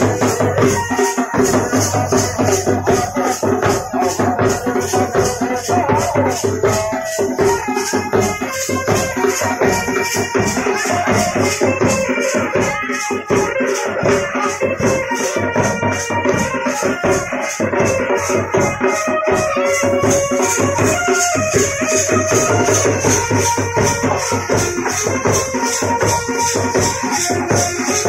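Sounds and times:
band melody: 0:00.0 - 0:28.0
rattling high beat: 0:00.0 - 0:28.0
side drum beaten with sticks: 0:00.0 - 0:28.0.

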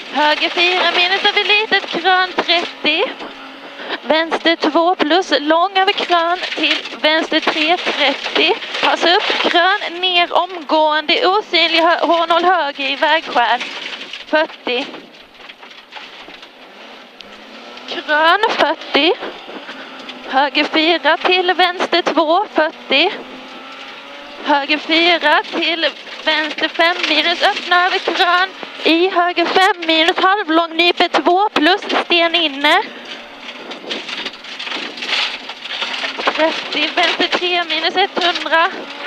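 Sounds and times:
stones pattering on underside: 0:00.0 - 0:39.0
tyres rushing on gravel: 0:00.0 - 0:39.0
gravel hissing against car underbody: 0:31.5 - 0:39.0.

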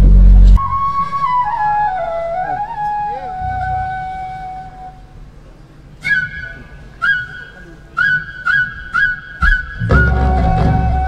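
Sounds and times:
high wind instrument playing: 0:00.6 - 0:11.0.

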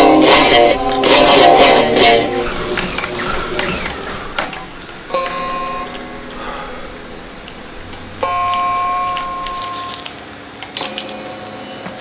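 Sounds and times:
electric guitar notes ringing: 0:00.0 - 0:10.0.

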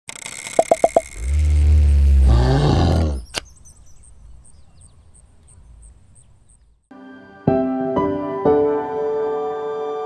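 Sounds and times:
cartoon bear roaring: 0:01.3 - 0:03.2.

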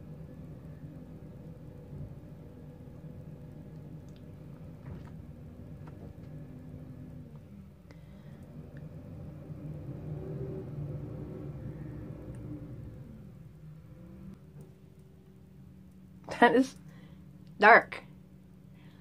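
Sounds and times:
low engine-like mechanical hum: 0:00.0 - 0:19.0.

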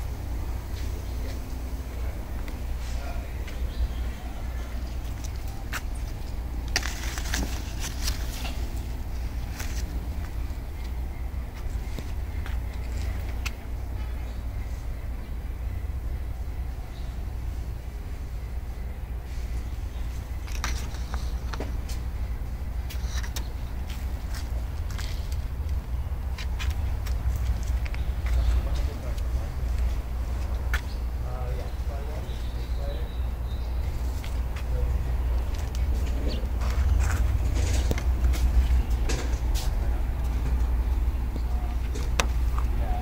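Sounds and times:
low outdoor rumble: 0:00.0 - 0:43.0
faint clicks and rustles: 0:04.8 - 0:13.7.

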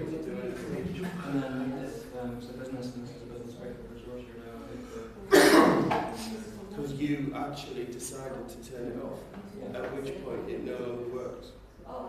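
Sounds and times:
person coughing loudly: 0:05.3 - 0:06.0.

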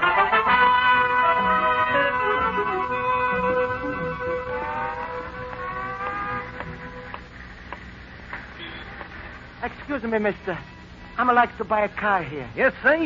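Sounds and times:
held brass chord with slides: 0:00.0 - 0:07.2.

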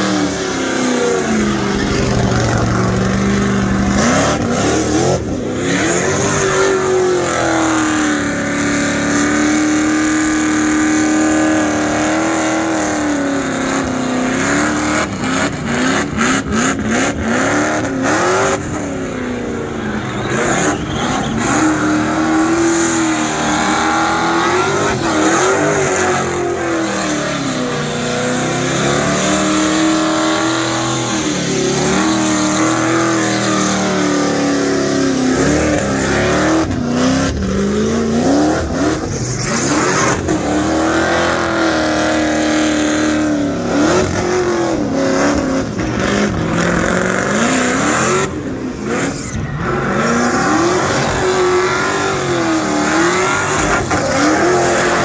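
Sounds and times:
car engine revving high: 0:00.0 - 0:55.0.

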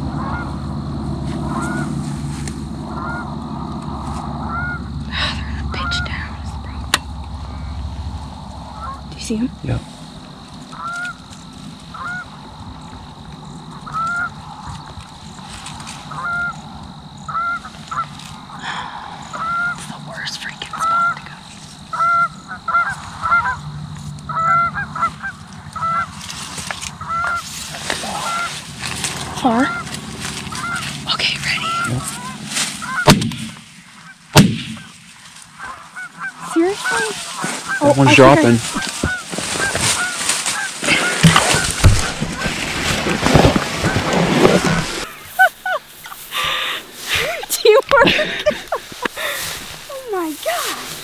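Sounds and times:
geese honking: 0:00.0 - 0:51.0
shotgun blasts: 0:33.0 - 0:33.6, 0:34.3 - 0:34.9.

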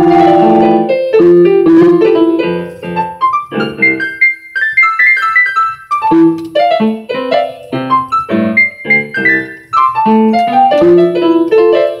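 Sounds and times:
solo piano playing: 0:00.0 - 0:12.0.

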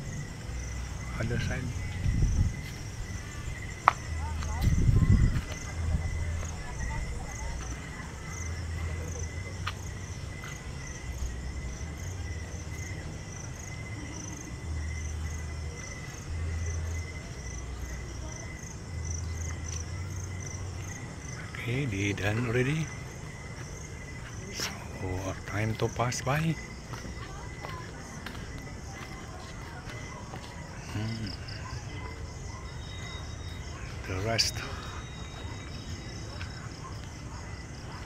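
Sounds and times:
insects chirping: 0:00.0 - 0:38.0.

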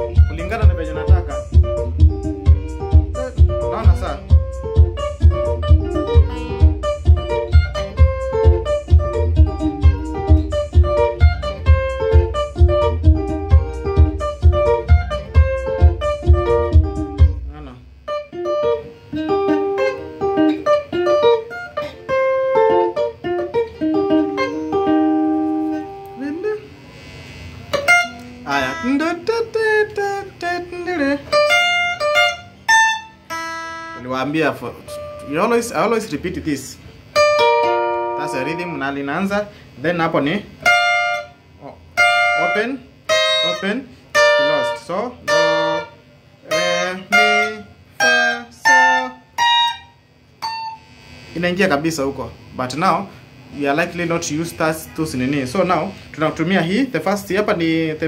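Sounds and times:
rhythm backing with bass beat: 0:00.0 - 0:26.2
electric guitar lead lines: 0:00.0 - 0:58.0.

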